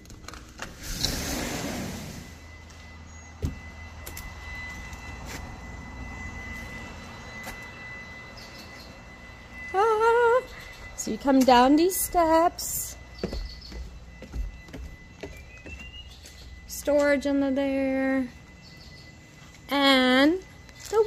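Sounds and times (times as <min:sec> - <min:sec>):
steady low rumble: 0:00.0 - 0:20.9.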